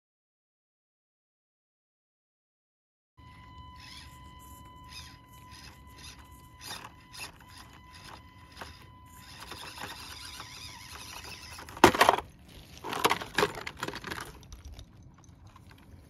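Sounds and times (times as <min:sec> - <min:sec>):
small electric motor whining: 0:03.2 - 0:13.4
tires scraping on rock: 0:03.9 - 0:16.0
toy crawler clattering onto rocks: 0:05.6 - 0:16.0.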